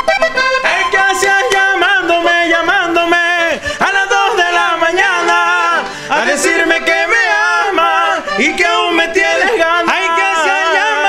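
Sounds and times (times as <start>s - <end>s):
button accordion playing a melody: 0.0s - 11.0s.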